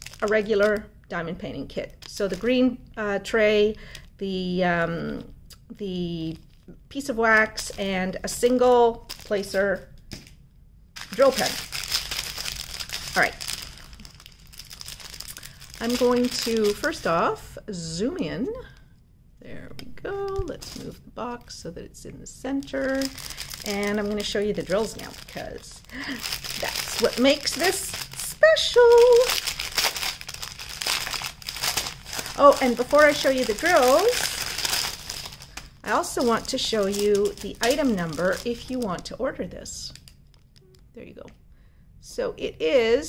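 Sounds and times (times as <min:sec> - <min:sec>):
plastic packets crinkling: 0:00.0 - 0:00.8, 0:01.8 - 0:02.5, 0:07.3 - 0:10.3, 0:11.0 - 0:17.2, 0:22.5 - 0:39.2.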